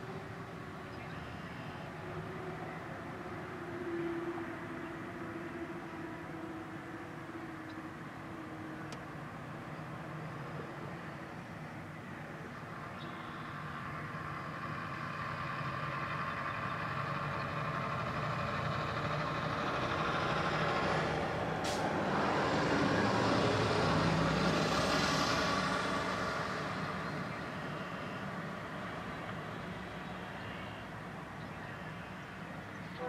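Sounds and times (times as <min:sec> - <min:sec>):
diesel locomotive engine drone: 0:00.0 - 0:33.0.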